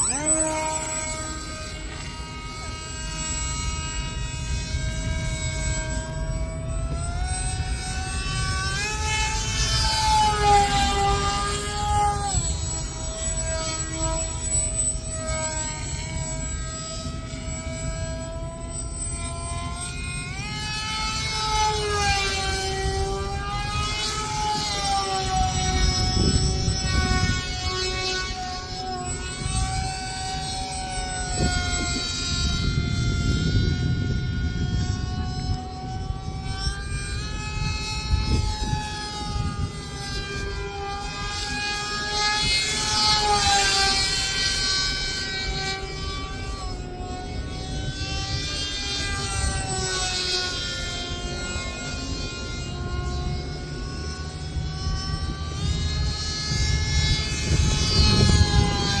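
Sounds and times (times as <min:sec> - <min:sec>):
model plane motor whining: 0:00.0 - 0:59.0.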